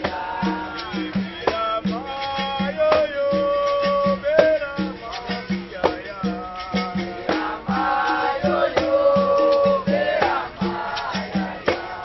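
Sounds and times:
berimbau twanging rhythm: 0:00.0 - 0:12.0.

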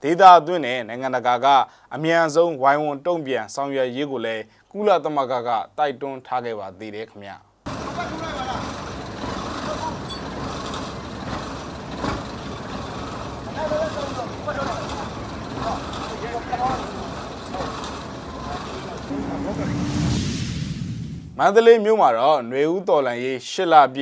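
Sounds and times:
truck engine idling: 0:07.7 - 0:19.1
indistinct voices talking: 0:13.4 - 0:20.1.

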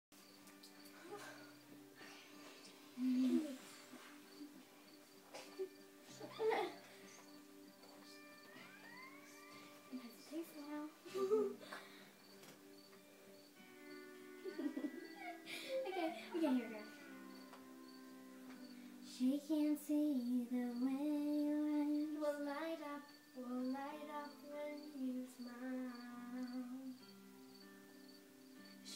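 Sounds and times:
girls' voices: 0:09.8 - 0:11.8, 0:15.2 - 0:17.0.

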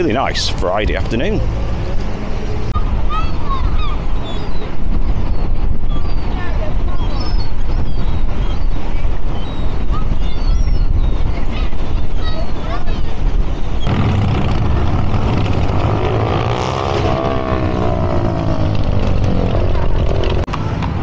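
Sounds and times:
street traffic: 0:00.0 - 0:21.0
gulls calling: 0:02.6 - 0:20.4
heavy low rumble: 0:13.2 - 0:21.0
vehicle engine passing by: 0:13.8 - 0:20.5.

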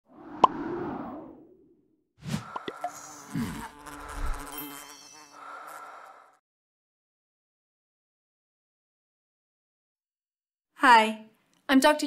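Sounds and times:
low swoop: 0:00.0 - 0:01.9.

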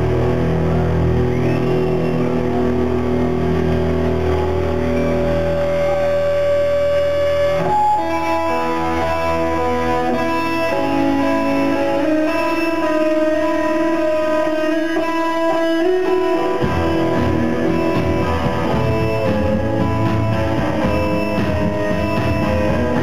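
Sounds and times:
bass guitar: 0:00.0 - 0:23.0
drums: 0:00.0 - 0:23.0
electric guitars playing chords: 0:00.0 - 0:23.0.

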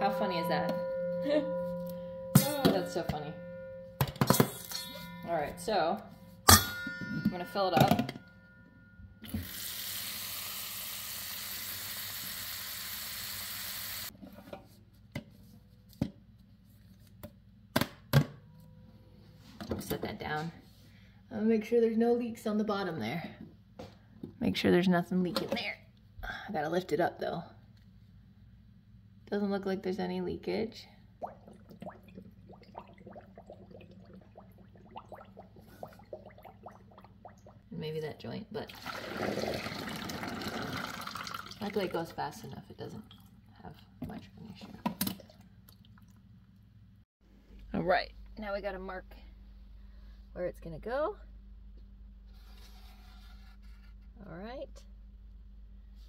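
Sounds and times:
faucet running into metal bowl: 0:09.2 - 0:14.1, 0:38.7 - 0:42.0.

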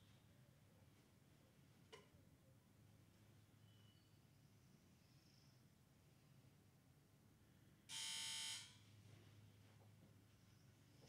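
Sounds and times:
electronic buzzer tone: 0:07.9 - 0:08.8.

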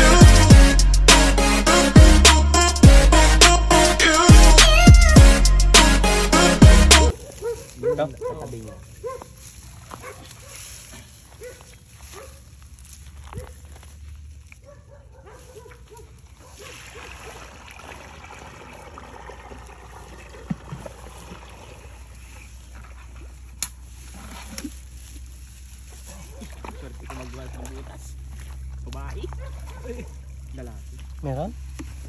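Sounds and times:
water sloshing in a bucket: 0:16.1 - 0:32.0
water pouring onto ground: 0:16.6 - 0:29.3.

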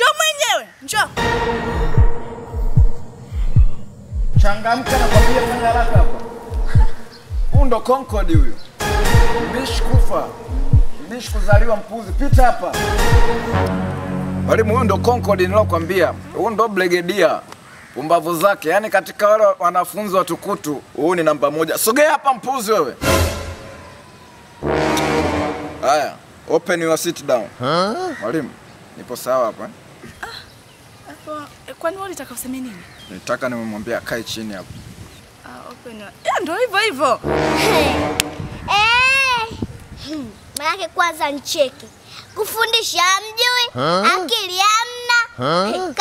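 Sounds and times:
steady held tone: 0:01.2 - 0:05.1, 0:13.1 - 0:16.8
low horn-like sound effect: 0:01.2 - 0:07.2, 0:08.8 - 0:11.2, 0:12.7 - 0:17.0, 0:23.0 - 0:26.3, 0:37.2 - 0:38.7
deep bass thumps dropping in pitch: 0:01.2 - 0:16.5.

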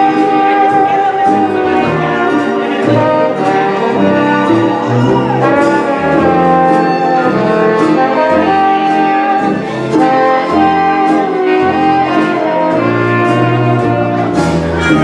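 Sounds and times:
dance orchestra accompaniment: 0:00.0 - 0:15.0
steady bass notes: 0:00.0 - 0:15.0
trombone solo melody: 0:00.0 - 0:15.0.

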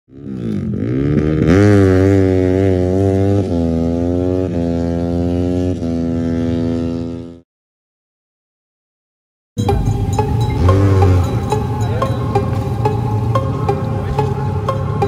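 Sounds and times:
deep droning tone: 0:09.6 - 0:15.0.

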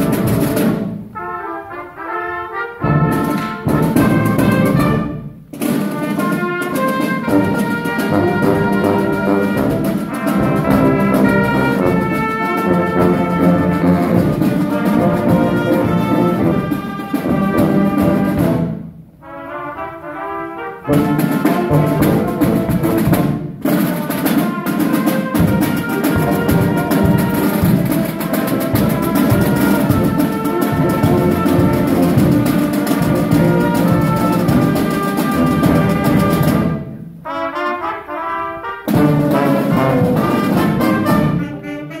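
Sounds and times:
snare and bass drums: 0:00.0 - 0:01.2, 0:02.8 - 0:19.0, 0:20.9 - 0:37.1, 0:38.8 - 0:41.8
marching band brass: 0:00.0 - 0:42.0.

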